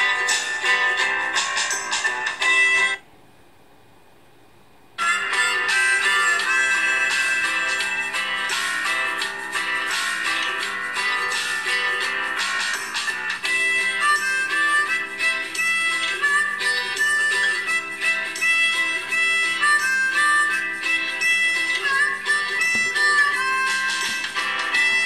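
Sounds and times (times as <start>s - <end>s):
guitar music through phone speaker: 0.0s - 3.0s, 5.0s - 25.0s.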